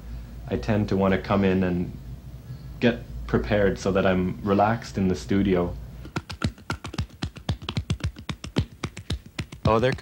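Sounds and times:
record sleeves flipping and tapping: 6.0 - 10.0.

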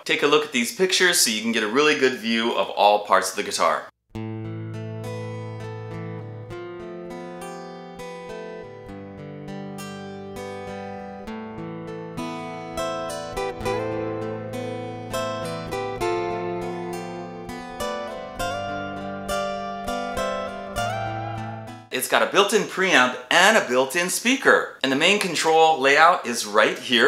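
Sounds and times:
plucked acoustic guitar: 4.1 - 21.9.

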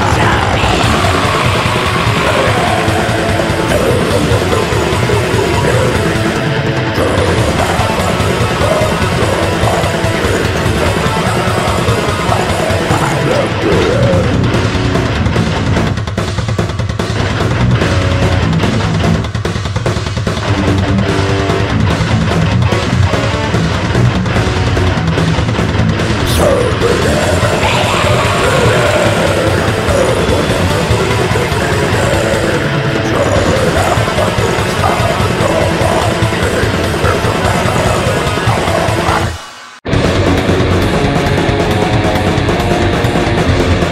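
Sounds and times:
growled vocals: 0.0 - 14.8, 26.2 - 39.6
distorted electric guitar riff: 0.0 - 43.9
fast dense drums: 0.0 - 43.9.

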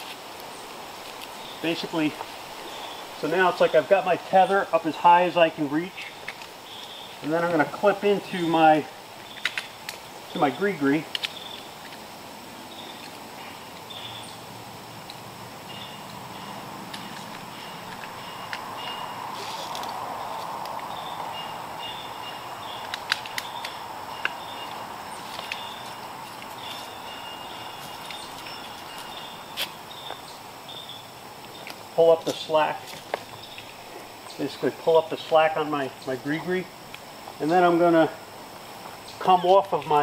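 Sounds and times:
outdoor background hiss: 0.0 - 40.0
faint high chirps: 15.7 - 31.6.

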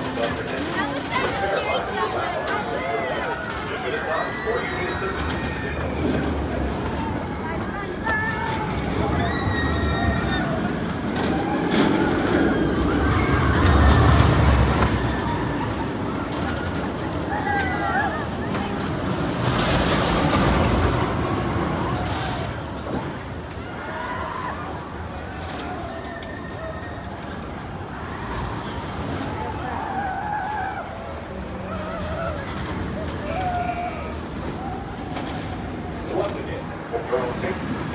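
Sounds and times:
roller coaster rumbling on track: 0.0 - 37.9
wheels squealing: 0.0 - 37.9.

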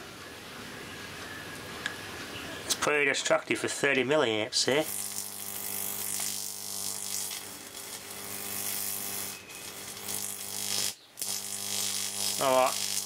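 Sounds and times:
transformer buzzing with mains hum: 3.9 - 13.0
electric arc hissing sizzle: 4.7 - 13.0.

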